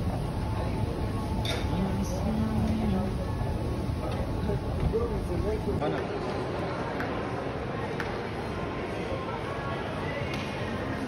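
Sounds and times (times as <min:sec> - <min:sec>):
crowd noise and voices: 0:00.0 - 0:11.0.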